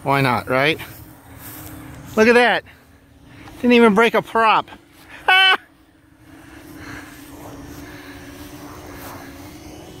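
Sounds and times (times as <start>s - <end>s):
quadcopter motors humming: 0.0s - 10.0s.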